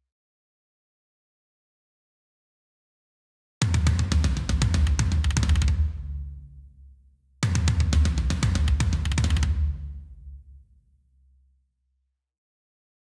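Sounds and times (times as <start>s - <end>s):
metal drum kit tom fill: 3.6s - 6.4s, 7.4s - 10.0s.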